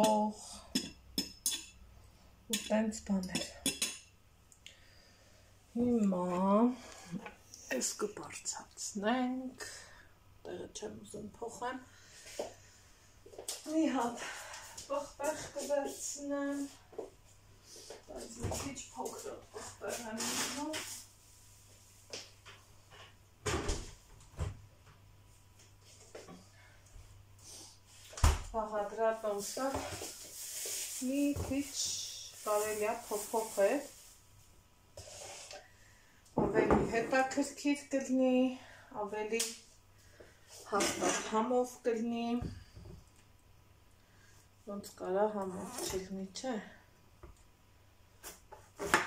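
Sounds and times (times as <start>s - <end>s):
woman talking: 0.0s - 0.7s, 2.5s - 3.7s, 5.8s - 11.9s, 13.6s - 16.8s, 18.1s - 21.0s, 28.5s - 29.9s, 31.0s - 34.0s, 36.4s - 39.6s, 40.7s - 42.6s, 44.7s - 46.8s.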